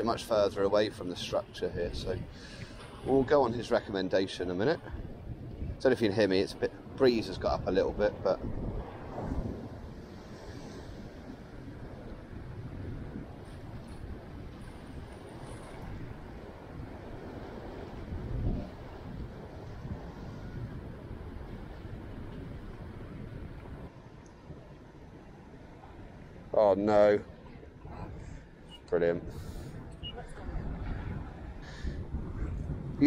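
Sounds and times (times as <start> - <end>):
sea water washing: 0.0 - 33.0
wind rumbling on microphone: 0.0 - 33.0.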